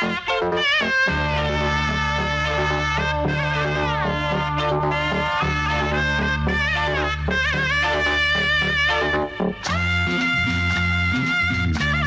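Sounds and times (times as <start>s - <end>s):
film song music: 0.0s - 12.0s.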